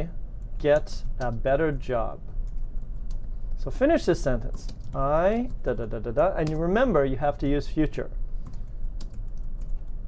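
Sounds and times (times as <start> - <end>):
low steady hum: 0.0 - 10.0
keyboard typing clicks: 0.4 - 1.6, 2.2 - 3.3, 4.4 - 5.7, 6.4 - 6.7, 7.8 - 10.0.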